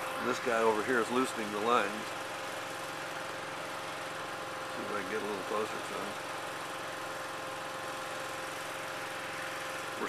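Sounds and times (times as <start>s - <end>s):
mechanical drone: 0.0s - 2.1s
constant pitched whine: 0.0s - 10.0s.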